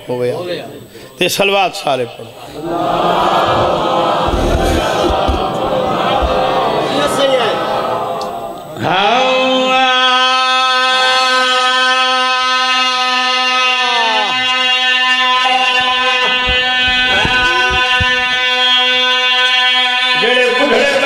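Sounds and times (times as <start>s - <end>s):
male voices chanting held note: 2.6s - 8.0s.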